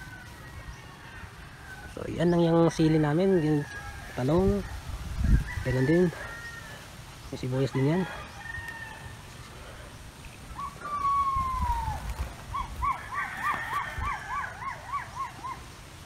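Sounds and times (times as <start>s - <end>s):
bird whistling call: 10.5s - 13.2s.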